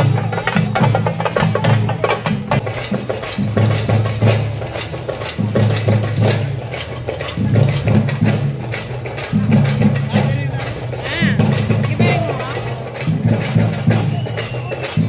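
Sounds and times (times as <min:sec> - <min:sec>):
fast drumming: 0:00.0 - 0:15.0.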